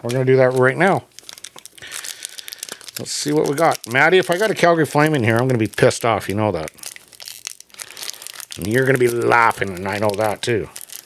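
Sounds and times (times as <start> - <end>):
plastic wrapper crinkling and tearing: 0.0 - 11.0.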